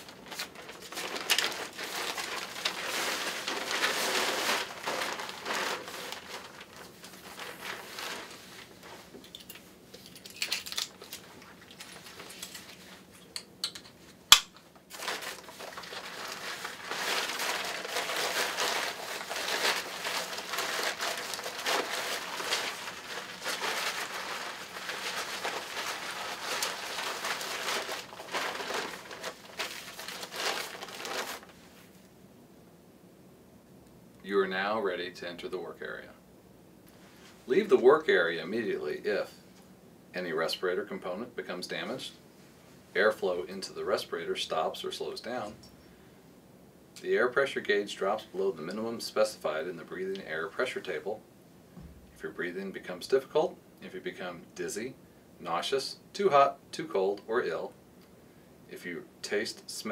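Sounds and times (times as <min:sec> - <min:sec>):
crinkly fabric rustling: 0:00.0 - 0:13.3, 0:14.0 - 0:32.1.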